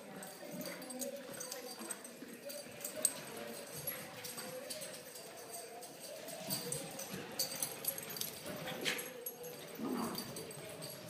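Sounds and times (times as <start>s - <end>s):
puppies scuffling: 0.0s - 11.0s.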